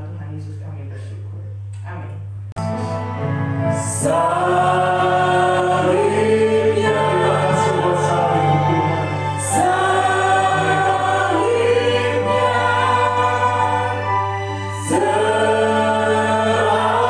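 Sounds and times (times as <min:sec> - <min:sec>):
keyboard accompaniment: 0:02.6 - 0:17.0
voices singing worship song: 0:03.7 - 0:17.0.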